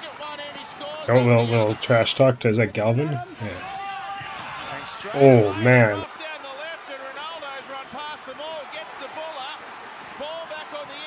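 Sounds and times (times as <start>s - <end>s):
stadium crowd noise: 0.0s - 11.0s
commentator calling play: 4.7s - 11.0s.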